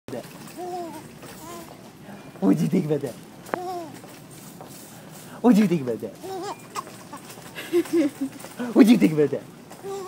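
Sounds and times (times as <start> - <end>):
baby giggling: 0.6 - 1.7, 6.2 - 8.4.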